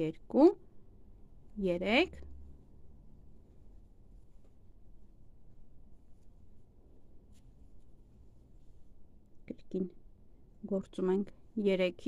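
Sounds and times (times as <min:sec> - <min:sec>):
faint rustle: 0:03.4 - 0:09.4.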